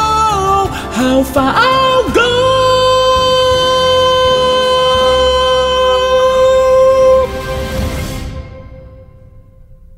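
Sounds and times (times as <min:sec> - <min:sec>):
man singing long high note: 0:00.0 - 0:08.0
backing track: 0:00.0 - 0:09.9.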